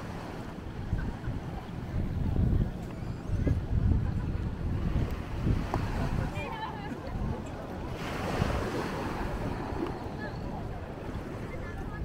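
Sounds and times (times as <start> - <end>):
faint chatter of people: 0.0 - 12.0
wind buffeting microphone: 0.0 - 12.0
surf washing on sand: 3.6 - 12.0.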